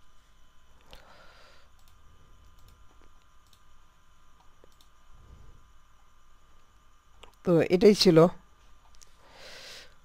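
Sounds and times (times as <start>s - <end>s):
low electrical hum and hiss: 0.0s - 10.0s
computer mouse clicks: 1.7s - 3.7s, 4.4s - 5.0s.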